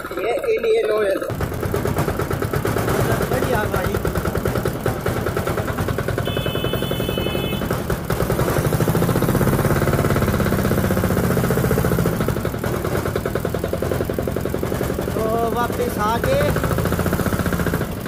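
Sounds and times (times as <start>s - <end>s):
tractor engine running: 0.0s - 18.0s.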